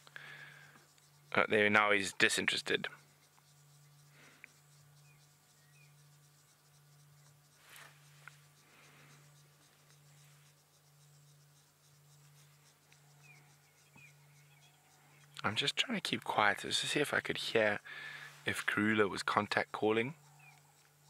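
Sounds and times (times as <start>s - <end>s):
soft brush with tick: 0.0s - 21.0s
faint high chirps: 2.9s - 15.5s, 18.0s - 21.0s.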